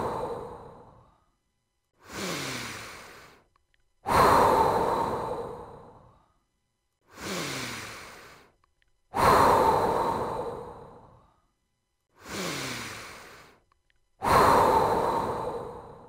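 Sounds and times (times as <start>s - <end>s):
slow deep breaths: 0.0s - 16.0s.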